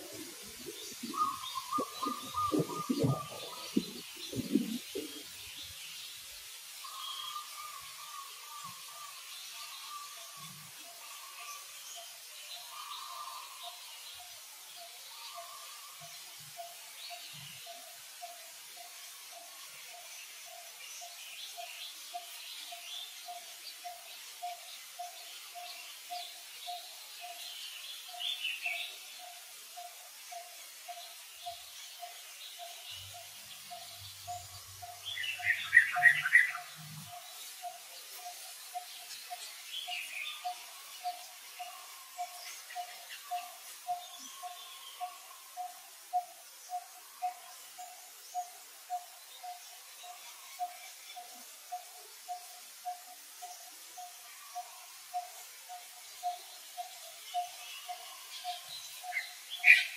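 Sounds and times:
birds chirping: 0.0 - 5.8, 31.4 - 51.3.

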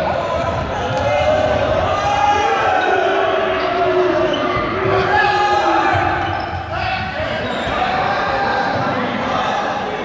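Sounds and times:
students shouting: 0.0 - 10.0.

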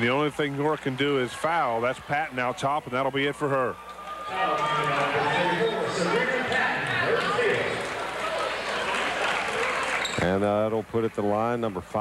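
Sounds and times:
crowd shouting and cheering: 0.4 - 10.3.

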